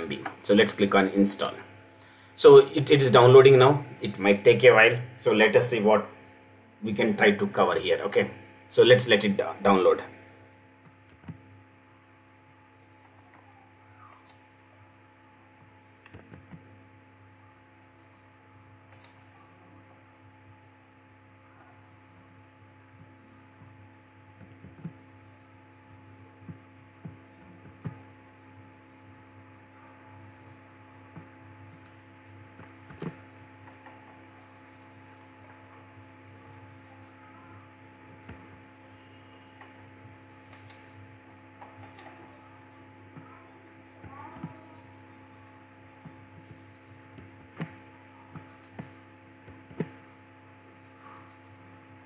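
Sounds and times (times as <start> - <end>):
low electrical hum: 0.0 - 52.0.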